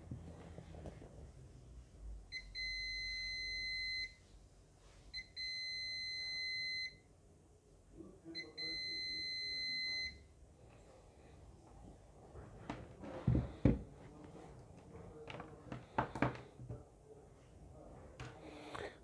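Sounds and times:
multimeter continuity beeps: 0:02.3 - 0:04.2, 0:05.2 - 0:07.1, 0:08.4 - 0:10.3.

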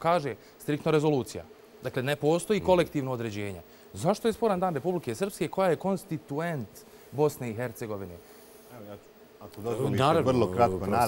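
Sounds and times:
faint steady hum: 0:00.0 - 0:11.0
man speaking: 0:00.0 - 0:11.0.

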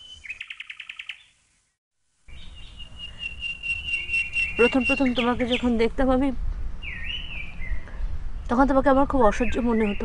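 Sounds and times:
small birds chirping: 0:00.0 - 0:06.2, 0:06.8 - 0:10.0.

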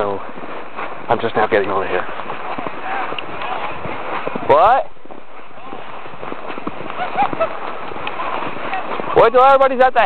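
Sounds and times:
footsteps crunching snow: 0:00.0 - 0:10.0.

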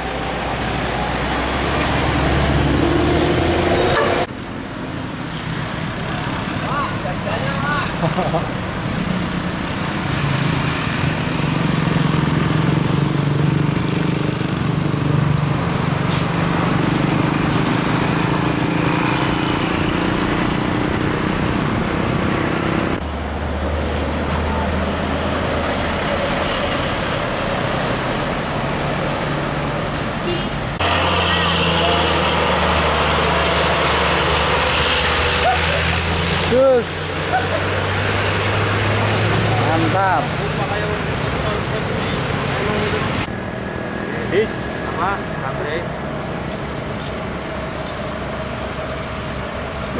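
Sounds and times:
diesel coach engines passing: 0:00.0 - 0:49.9.

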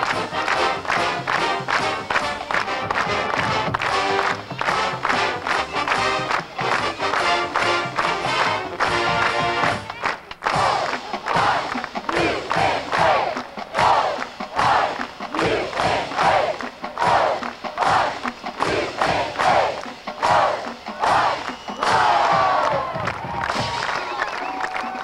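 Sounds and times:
people shouting rhythmic chant: 0:09.6 - 0:23.1.

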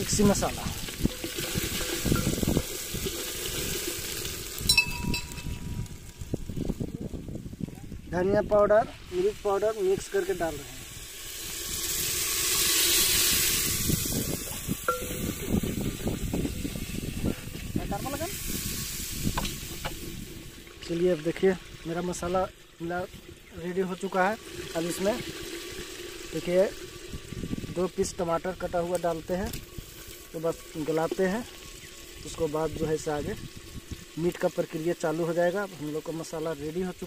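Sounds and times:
masala sizzling in hot oil: 0:00.0 - 0:37.0.

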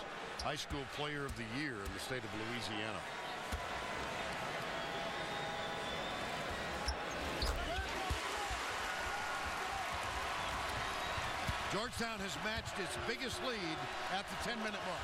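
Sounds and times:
arena crowd noise: 0:00.0 - 0:15.0.

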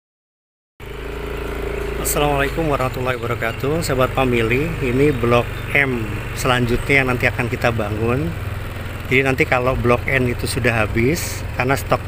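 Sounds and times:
engine running steadily: 0:00.8 - 0:12.0.

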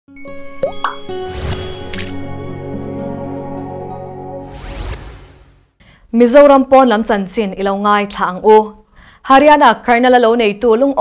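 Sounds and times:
swelling whoosh: 0:04.3 - 0:05.8.

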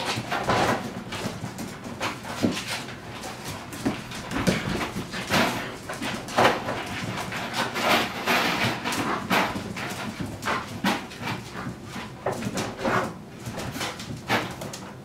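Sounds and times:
puppies scuffling on tile floor: 0:00.0 - 0:15.0.

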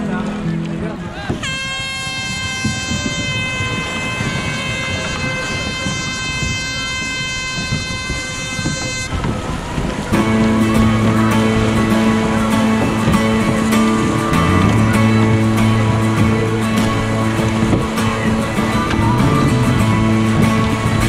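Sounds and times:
kayak paddles splashing water: 0:00.0 - 0:21.0
music: 0:00.0 - 0:21.0.

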